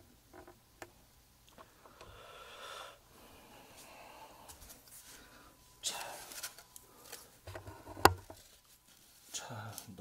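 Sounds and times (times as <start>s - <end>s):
handling rustles and knocks: 6.0s - 10.0s.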